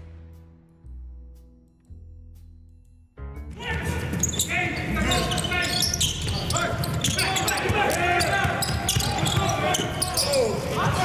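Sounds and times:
voices: 0:03.6 - 0:11.0
ball bouncing on hardwood court: 0:06.1 - 0:11.0.

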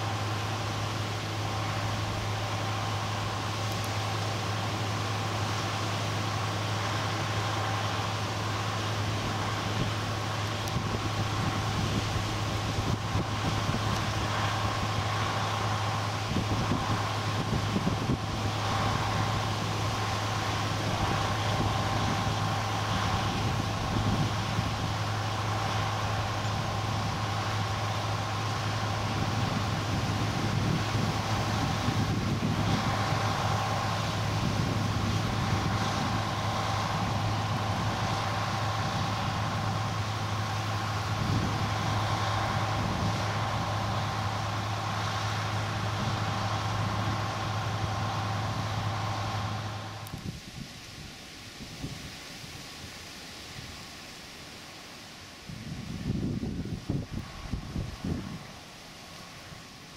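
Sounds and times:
diesel engine droning: 0:00.0 - 0:52.1, 0:54.7 - 0:59.9.

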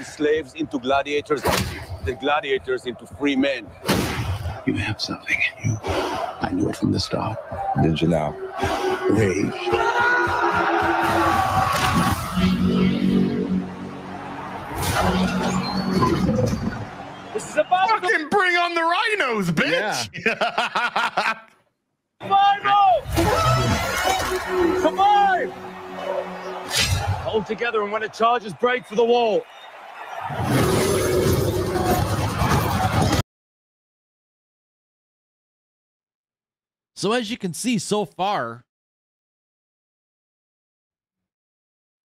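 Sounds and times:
action sound effects: 0:07.8 - 0:18.7, 0:23.0 - 0:33.2.

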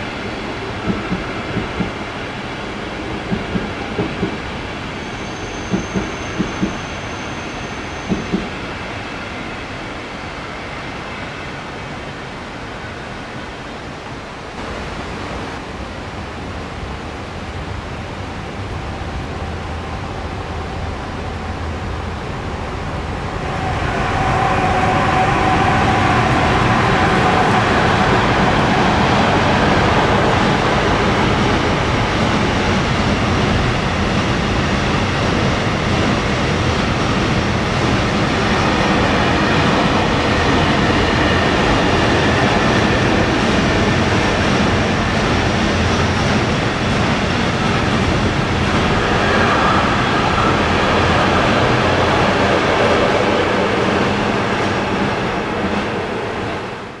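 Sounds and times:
train wheels rumbling on rails: 0:00.0 - 0:13.7, 0:16.6 - 0:57.0.

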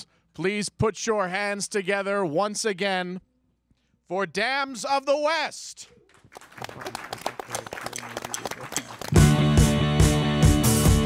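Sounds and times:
audience applauding: 0:06.1 - 0:09.6.

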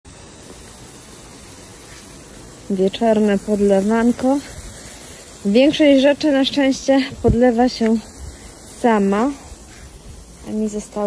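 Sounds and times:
sprinkler spraying water hiss: 0:00.0 - 0:11.0.

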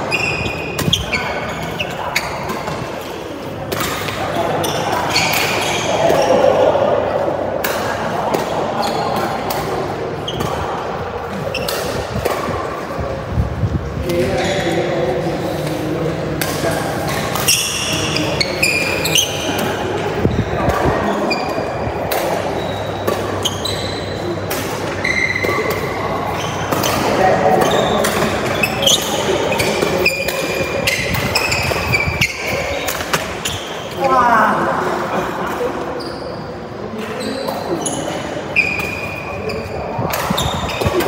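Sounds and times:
shoe squeaks on court floor: 0:00.0 - 0:02.8, 0:04.3 - 0:06.5, 0:08.8 - 0:09.3, 0:11.4 - 0:12.1, 0:17.3 - 0:34.0, 0:35.9 - 0:41.0.

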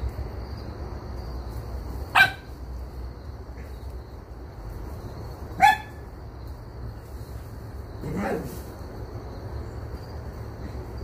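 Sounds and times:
dog barking: 0:02.1 - 0:02.5, 0:05.6 - 0:06.0.

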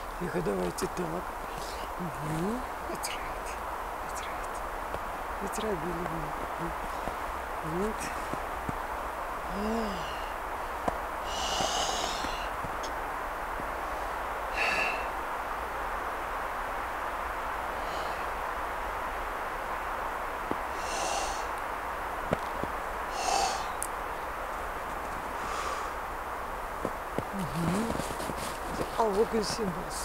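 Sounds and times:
background hiss: 0:00.0 - 0:30.0
woman humming: 0:05.4 - 0:06.8, 0:09.5 - 0:10.3, 0:27.3 - 0:28.1
woman exhaling forcefully: 0:09.5 - 0:10.3, 0:11.3 - 0:12.5, 0:14.6 - 0:15.1.

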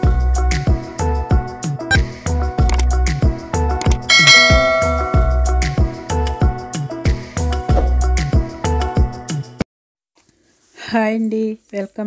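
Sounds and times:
background music with steady beat: 0:00.0 - 0:09.6
bell chime: 0:04.1 - 0:05.9.

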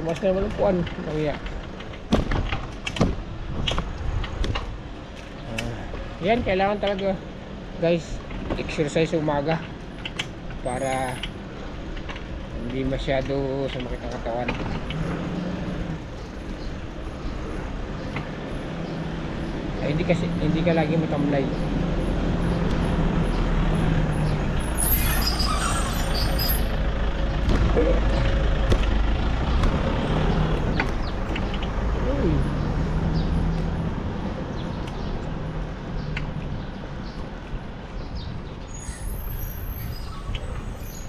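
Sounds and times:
street noise: 0:00.0 - 0:41.0
vehicle engine hum: 0:00.0 - 0:41.0
wind rumble on microphone: 0:00.4 - 0:06.8.

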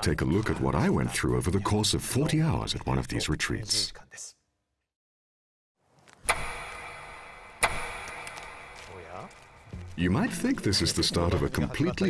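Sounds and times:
clock ticks: 0:06.3 - 0:08.9.

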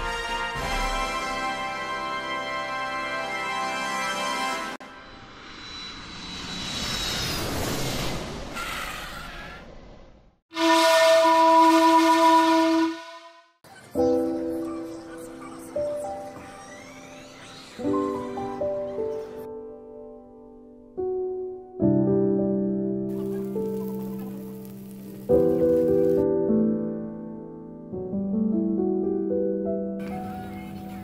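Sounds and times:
loud held horn-like note: 0:10.5 - 0:13.5.

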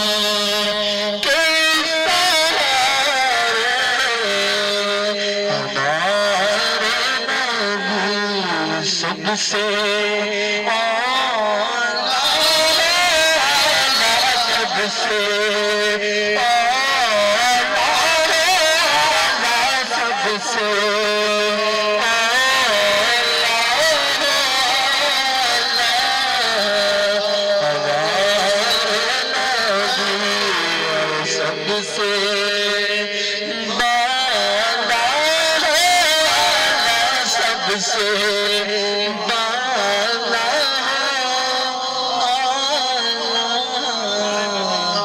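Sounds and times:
man singing over loudspeakers: 0:00.0 - 0:45.0.

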